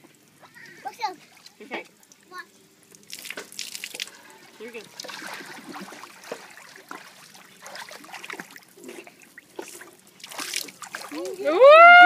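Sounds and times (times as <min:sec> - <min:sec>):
child splashing in pool water: 0:03.1 - 0:11.6.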